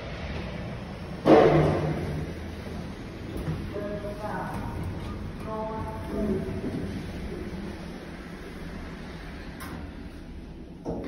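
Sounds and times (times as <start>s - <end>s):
loud clatter: 0.0s - 3.8s
lift doors sliding open: 0.0s - 11.0s
steady hum: 0.0s - 11.0s.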